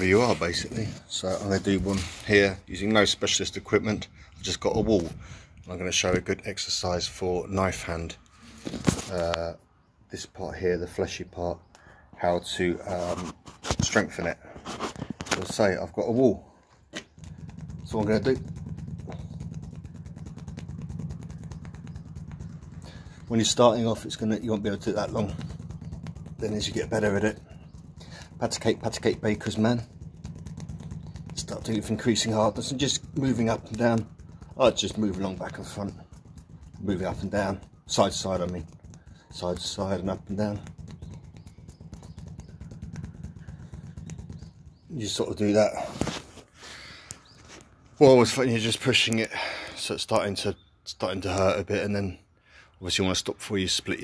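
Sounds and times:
hand scuffing concrete: 12.9 - 15.8
low engine-like drone: 16.2 - 46.5.

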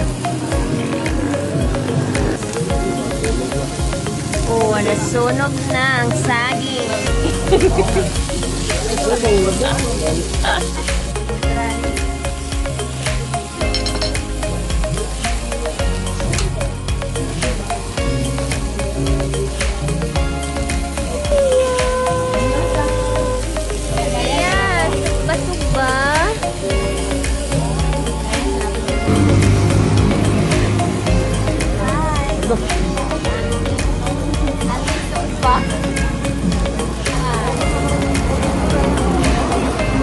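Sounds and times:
background music: 0.0 - 40.0
fish and meat sizzling on grill: 0.0 - 40.0.

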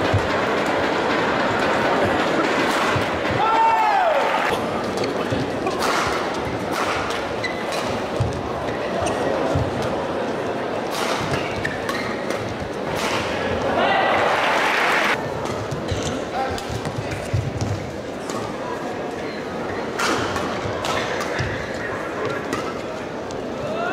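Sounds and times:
crowd murmur: 0.0 - 23.9
crowd cheering: 2.6 - 4.6, 13.4 - 15.2
rackets hitting shuttlecock: 5.0 - 8.4, 10.9 - 13.6.

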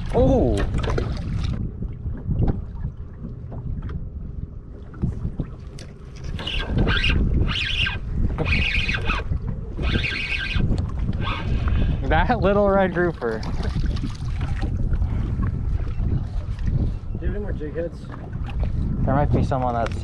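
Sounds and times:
wind on microphone: 0.0 - 20.0
fishing reel gears whirring: 6.3 - 11.7.

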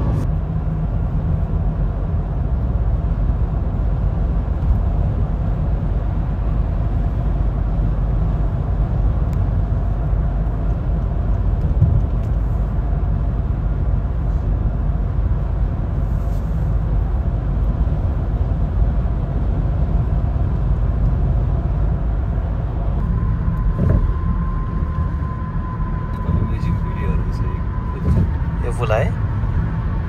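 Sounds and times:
car road and engine rumble: 0.0 - 30.0.

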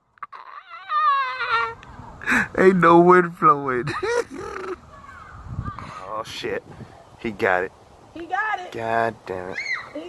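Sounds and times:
high-pitched vocal squeal: 0.2 - 1.8.

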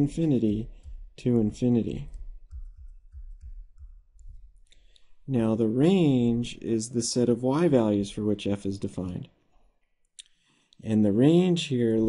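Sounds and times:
soft low thumps: 0.0 - 4.9
stylus clicking and tapping on tablet: 0.0 - 5.1.

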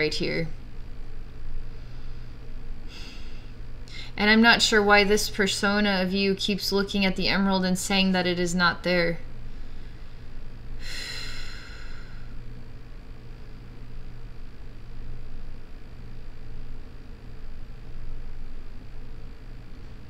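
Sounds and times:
low room hum: 0.0 - 20.0
woman sighing: 2.9 - 4.2.

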